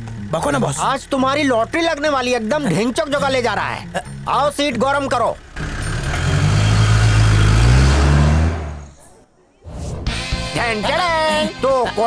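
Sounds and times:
car engine accelerating: 0.0 - 9.0.

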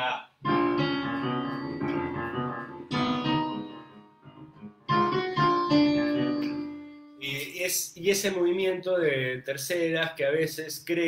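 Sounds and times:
piano playing: 0.4 - 7.8.

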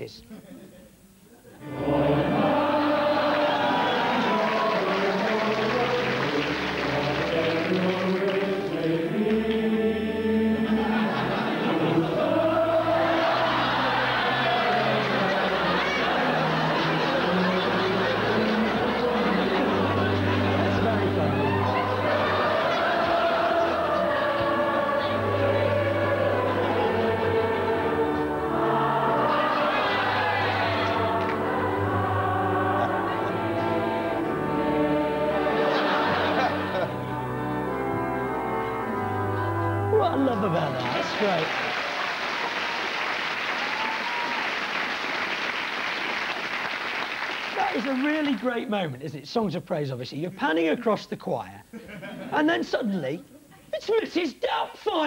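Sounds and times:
choir singing a hymn: 1.5 - 41.4.

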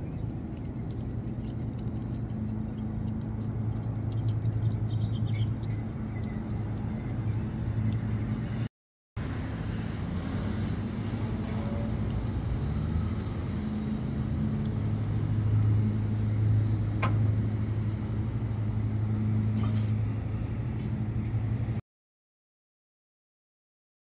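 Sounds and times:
low motor hum: 0.0 - 21.8.

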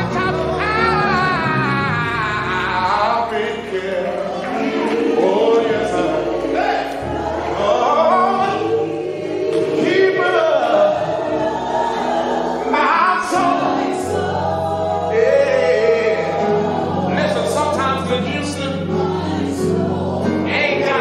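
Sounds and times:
voices singing gospel together: 0.0 - 21.0.

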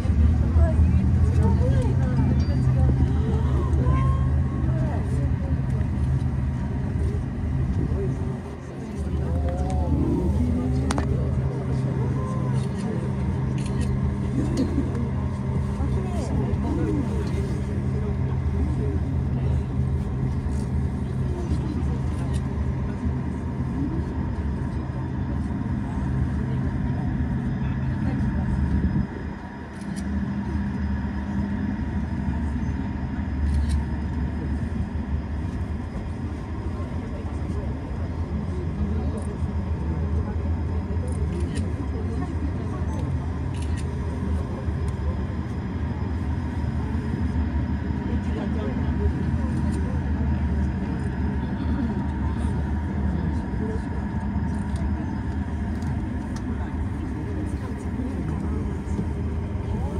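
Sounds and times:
cable car cabin humming: 0.0 - 59.9.

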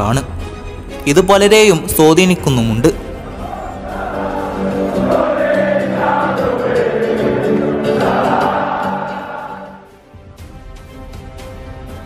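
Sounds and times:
choir singing held notes: 3.0 - 10.1.

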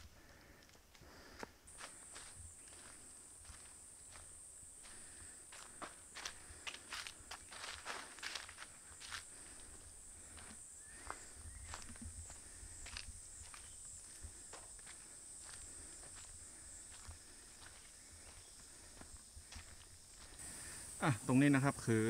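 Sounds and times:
footsteps on dry leaves: 1.7 - 20.5.

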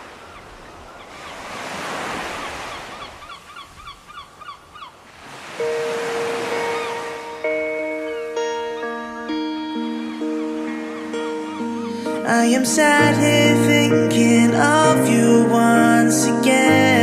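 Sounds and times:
surf breaking on beach: 0.0 - 3.4, 5.0 - 8.5
gull laughing calls: 5.6 - 12.9
soft music with held notes: 5.6 - 17.0.

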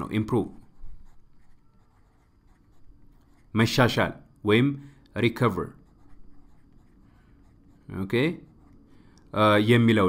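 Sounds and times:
stylus scratching on a drawing tablet: 0.0 - 4.2, 5.1 - 9.1.

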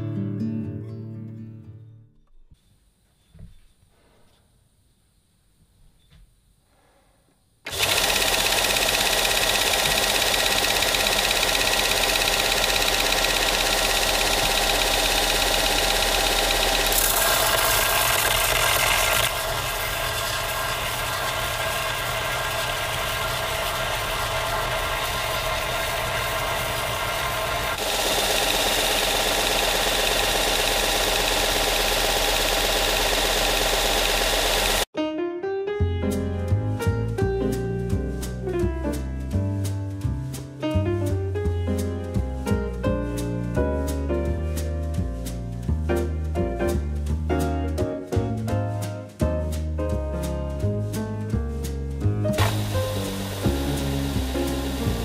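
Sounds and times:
belt sander grinding metal: 7.7 - 34.9, 52.4 - 55.0.

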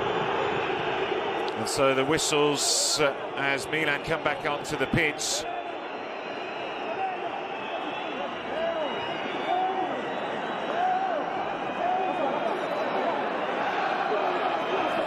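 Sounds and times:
crowd whistling: 0.0 - 15.0
din of crowd voices: 0.0 - 15.0
rising and falling crowd calls: 0.0 - 15.0.

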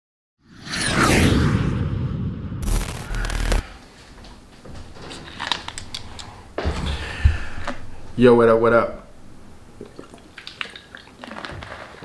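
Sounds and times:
harsh burst: 2.6 - 3.8.

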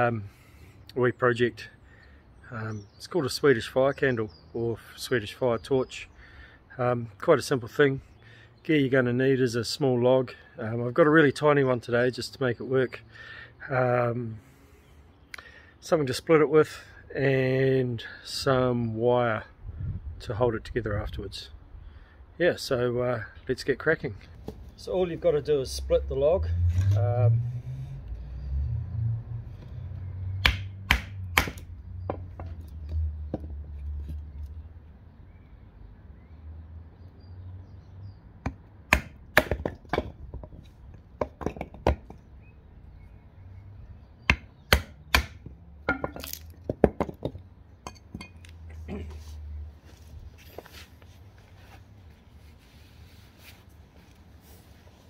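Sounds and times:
knife splitting wood knocks: 30.4 - 32.5, 38.4 - 40.6, 44.3 - 47.4.

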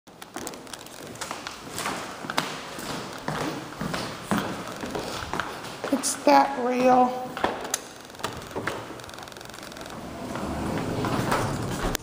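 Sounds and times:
elevator doors rumbling: 8.0 - 12.0
elevator door clunk: 9.9 - 12.0.

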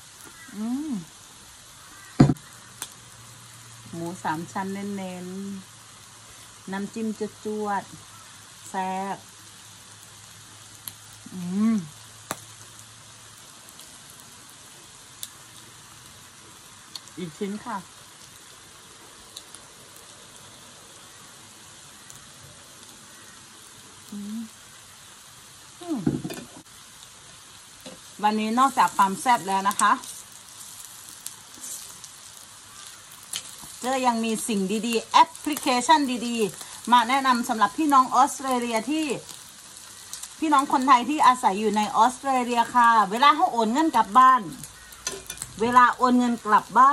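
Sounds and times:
meat sizzling on grill pan: 0.0 - 46.9
person humming mm: 0.5 - 1.2, 11.3 - 12.0, 24.1 - 24.6, 25.8 - 26.3.

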